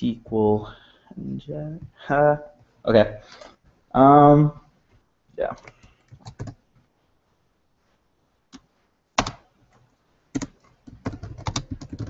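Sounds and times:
typing on computer keyboard: 0:05.6 - 0:06.6, 0:10.3 - 0:12.0.

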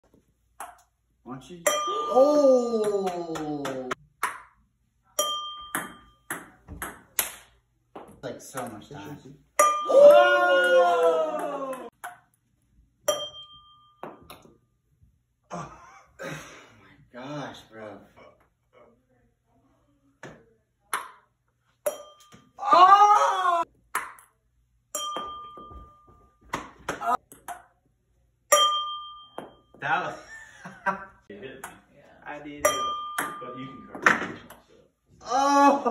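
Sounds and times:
ping-pong ball clicking: 0:00.6 - 0:00.9, 0:04.2 - 0:04.6, 0:05.2 - 0:07.5, 0:11.9 - 0:12.4, 0:24.0 - 0:24.4, 0:27.3 - 0:27.8.

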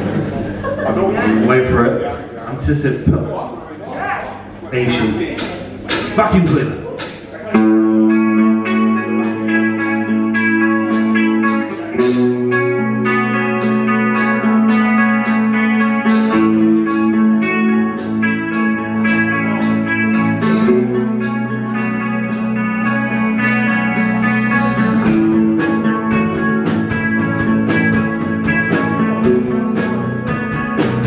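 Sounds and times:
bass guitar: 0:00.0 - 0:31.0
electric guitar: 0:04.4 - 0:31.0
drum beat: 0:04.9 - 0:20.9.

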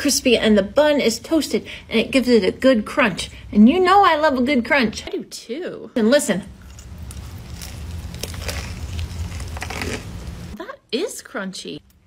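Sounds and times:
crunching and chewing: 0:06.6 - 0:10.2.

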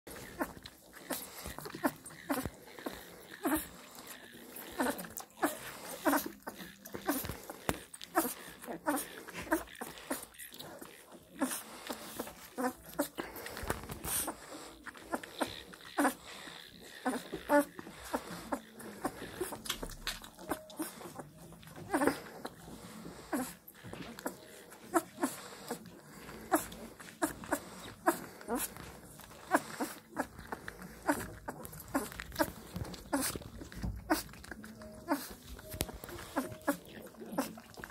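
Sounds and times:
puppy squeaks: 0:00.1 - 0:37.9
puppy suckling from bottle: 0:00.1 - 0:37.9.

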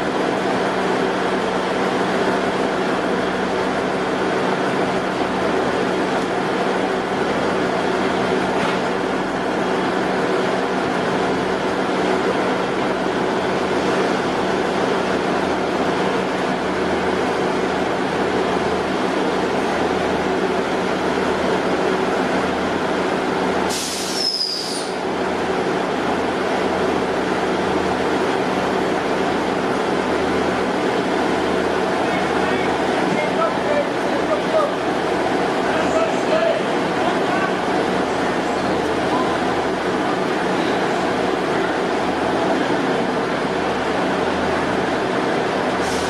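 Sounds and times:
diesel train engines humming: 0:00.0 - 0:46.0
brief high hiss: 0:23.7 - 0:25.0
short falling squeak: 0:24.1 - 0:24.8.

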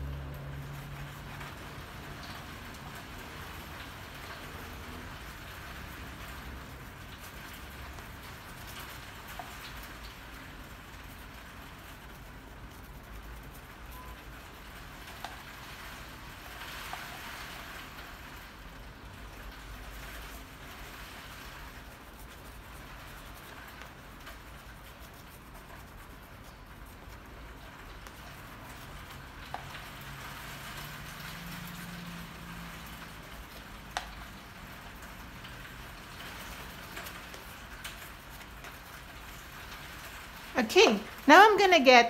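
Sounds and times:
palette knife scratching on paper: 0:08.0 - 0:15.4, 0:21.4 - 0:28.9.

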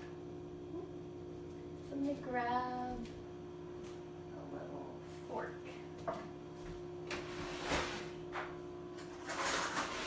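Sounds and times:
steady low hum: 0:00.0 - 0:09.6
kitchen utensils clattering: 0:09.0 - 0:10.0
utensils scraping: 0:09.1 - 0:10.0.

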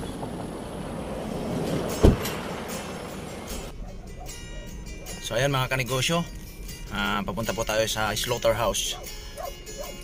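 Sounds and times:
car door shutting: 0:01.6 - 0:02.7
background music: 0:01.9 - 0:10.0.

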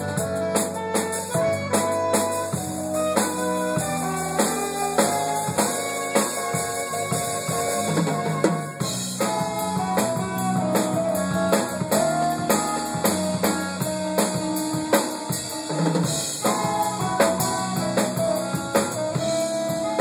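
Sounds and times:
bass: 0:00.0 - 0:20.0
drum kit: 0:00.0 - 0:20.0
keyboard: 0:00.0 - 0:20.0
saxophone: 0:00.0 - 0:20.0.

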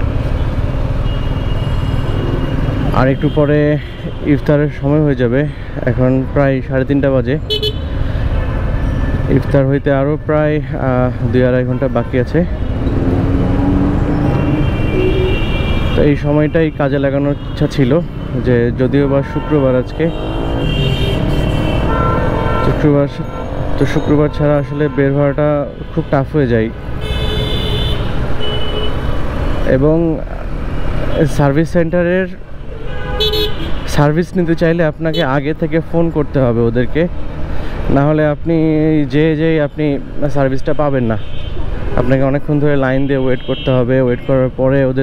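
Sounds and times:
man talking: 0:02.9 - 0:07.5, 0:09.2 - 0:12.6, 0:16.0 - 0:20.2, 0:22.6 - 0:26.8, 0:29.7 - 0:32.4, 0:33.9 - 0:37.2, 0:37.9 - 0:41.3, 0:42.0 - 0:45.0
bus engines humming: 0:04.3 - 0:27.0.

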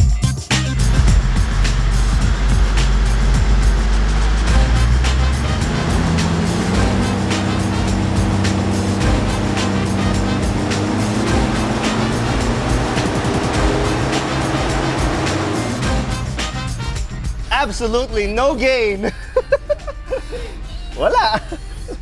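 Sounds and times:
background music with steady beat: 0:00.0 - 0:22.0
car engine revving under load: 0:00.8 - 0:18.3.

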